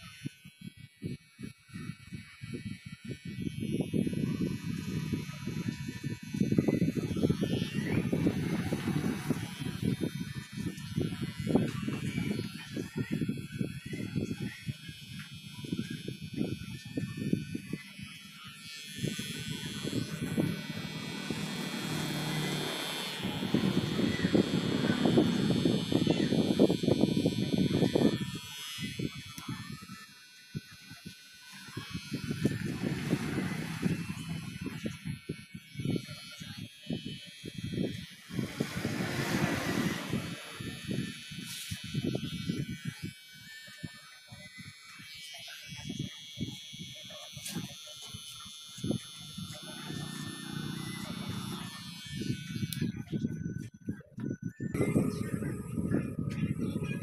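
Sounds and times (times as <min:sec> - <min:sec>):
electric hair clippers buzzing: 0:00.0 - 0:53.1.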